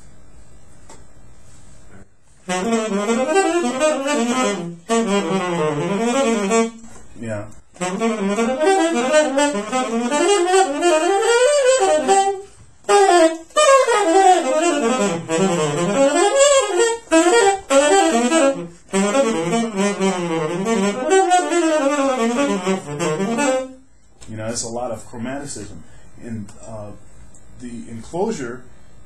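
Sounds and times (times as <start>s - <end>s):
saxophone playing fast jazz: 2.4s - 23.9s.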